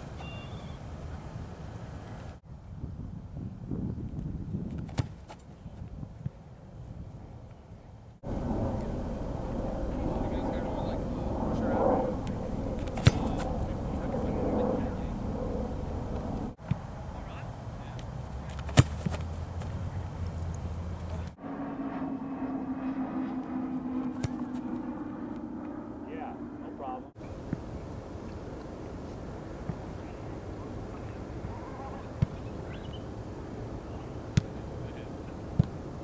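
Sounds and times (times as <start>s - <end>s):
faint voices: 8.3s - 16.5s, 29.9s - 32.7s
foot kicking ball: 12.8s - 13.4s.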